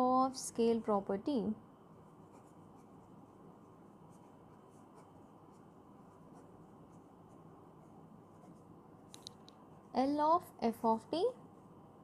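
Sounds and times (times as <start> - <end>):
low room hum: 0.0 - 12.0
pen scratching on paper: 2.2 - 8.7.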